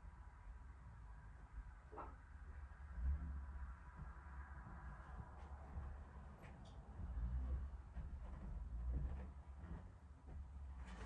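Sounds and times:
footsteps on stairs: 0:03.9 - 0:11.0.

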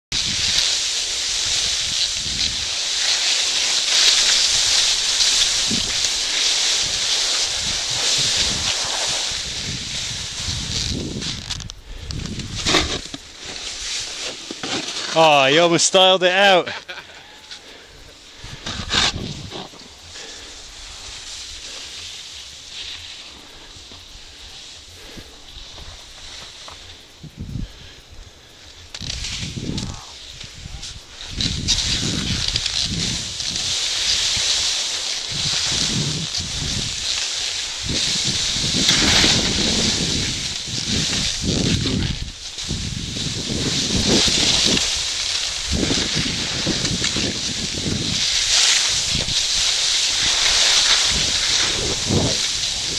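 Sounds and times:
skis scraping over icy snow: 0:00.1 - 0:27.1, 0:28.9 - 0:52.9
wind buffeting microphone: 0:01.3 - 0:02.8, 0:04.4 - 0:13.0, 0:18.0 - 0:19.7, 0:27.1 - 0:52.9.

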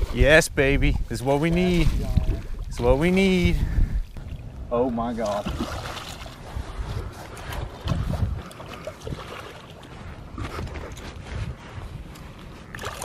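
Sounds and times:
wind rumbling on microphone: 0:00.0 - 0:13.0
fish splashing and thrashing in water: 0:05.2 - 0:06.8, 0:07.4 - 0:09.9, 0:12.7 - 0:13.0.

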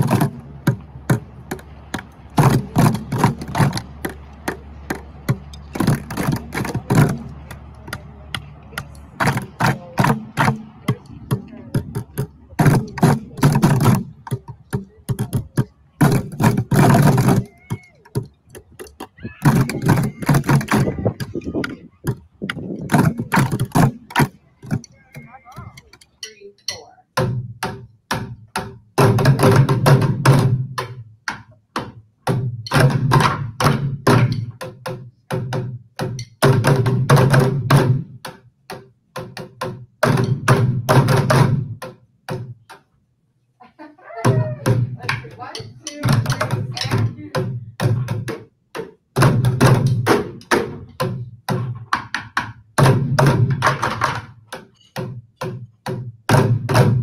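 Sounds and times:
bucket drumming: 0:00.0 - 0:42.6, 0:44.2 - 0:57.0.

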